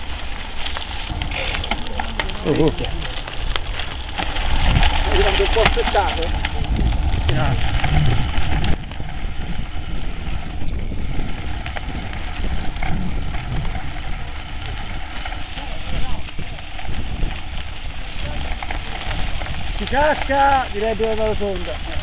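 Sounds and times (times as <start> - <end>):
bike tyres rolling on gravel: 0.0 - 22.0
wind buffeting microphone: 0.0 - 22.0.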